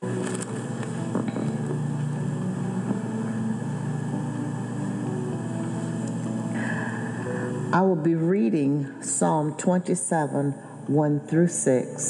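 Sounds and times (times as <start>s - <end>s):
low drone tones: 0.0s - 11.0s.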